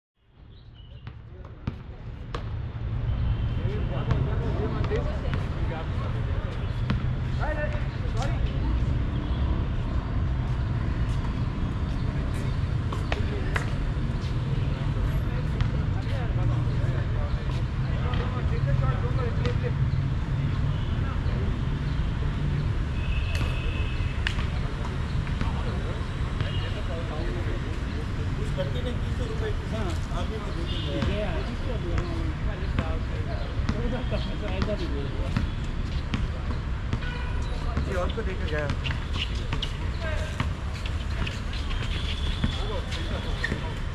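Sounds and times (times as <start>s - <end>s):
basketball bouncing: 1.0s - 2.6s.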